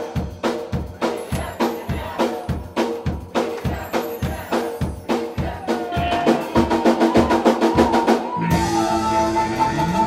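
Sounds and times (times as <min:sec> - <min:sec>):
drums hitting fast: 0:00.0 - 0:10.0
electric guitar chords: 0:08.3 - 0:10.0.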